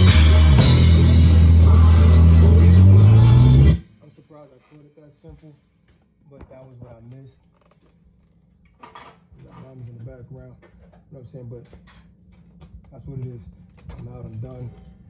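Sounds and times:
low hum: 0:00.0 - 0:04.2.

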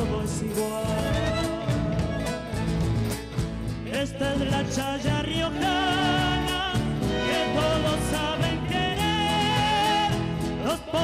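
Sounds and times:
bass: 0:00.0 - 0:11.0
drums: 0:00.0 - 0:11.0
strummed acoustic guitar: 0:00.0 - 0:11.0.

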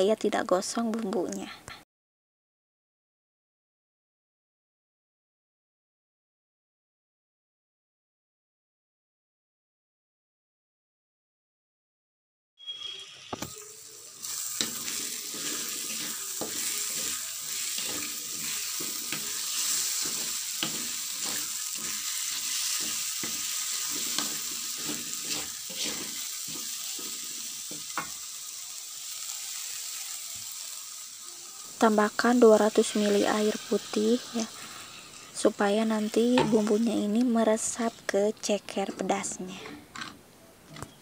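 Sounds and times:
paste sizzling in hot oil: 0:12.6 - 0:37.9
metal spoon scraping a pan: 0:14.3 - 0:28.2.

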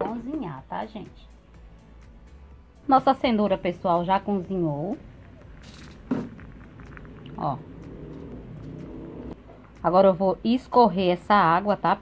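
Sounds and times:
water boiling in a pot: 0:04.7 - 0:08.2.

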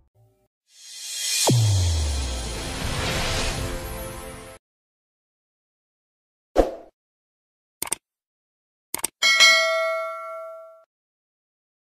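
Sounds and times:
double mouse click: 0:09.0 - 0:09.2
notification bell ding: 0:09.2 - 0:10.9.

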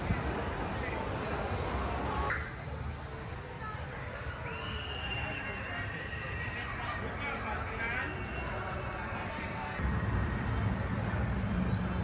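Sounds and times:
steady low rumble: 0:09.8 - 0:12.0.

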